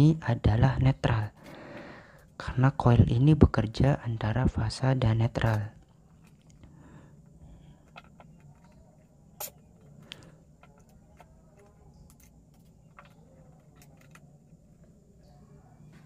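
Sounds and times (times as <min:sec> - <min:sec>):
low steady hum: 0:00.0 - 0:16.0
wire clicks and rustles: 0:07.6 - 0:15.0.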